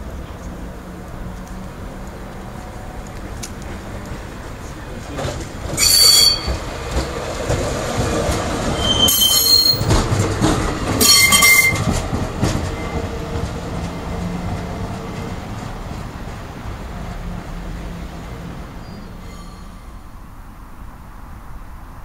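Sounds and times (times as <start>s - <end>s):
wheels rumbling on rails: 0.0s - 22.0s
tram wheels squealing: 3.7s - 16.0s, 16.9s - 20.4s.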